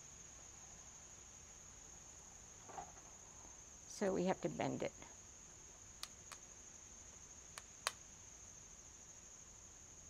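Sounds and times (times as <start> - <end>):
insects singing: 0.0 - 9.8
sharp clicks: 6.0 - 6.4.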